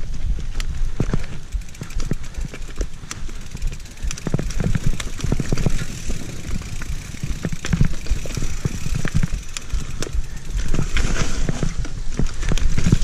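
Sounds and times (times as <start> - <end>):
bike knocking and rattling: 0.0 - 13.0
bike tyres on dirt trail: 0.0 - 13.0.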